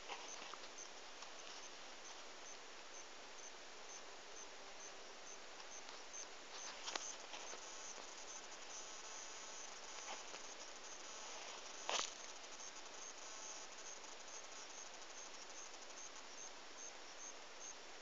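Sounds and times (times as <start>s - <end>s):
faint outdoor hiss: 0.0s - 18.0s
insect chirping: 0.0s - 18.0s.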